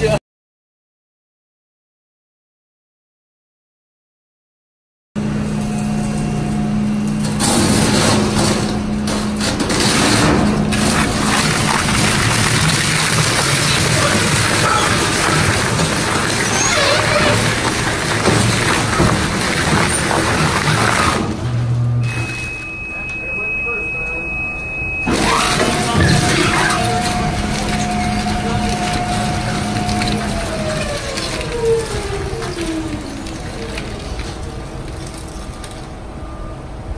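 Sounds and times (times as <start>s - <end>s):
shredder running with low hum: 5.2s - 22.8s, 25.1s - 36.0s
shredder cutting sandpaper: 10.7s - 21.3s, 25.2s - 35.2s
high-pitched beep: 22.0s - 27.0s.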